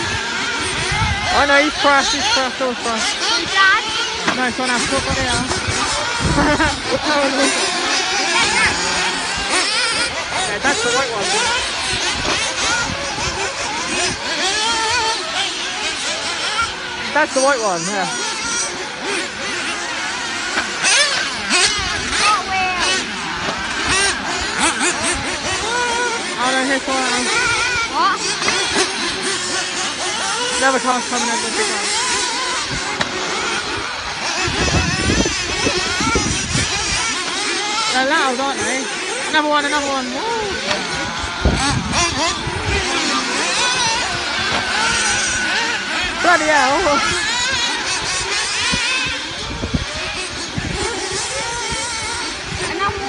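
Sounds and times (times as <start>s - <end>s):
remote-control buggies whining: 0.0s - 53.0s
small engines revving loud: 0.0s - 53.0s.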